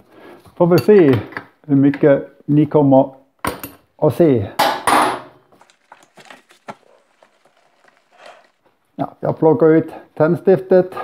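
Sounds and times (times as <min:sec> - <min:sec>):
handling clicks and rustles: 0:05.5 - 0:08.9.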